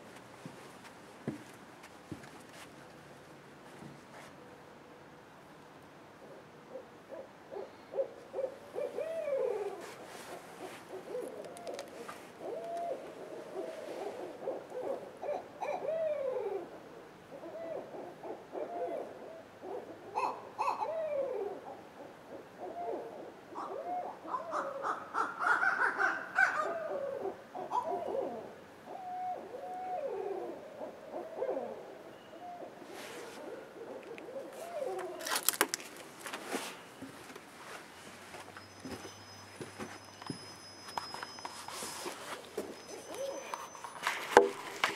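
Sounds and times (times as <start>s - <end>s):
owls hooting and wailing: 6.2s - 35.4s, 41.8s - 43.9s.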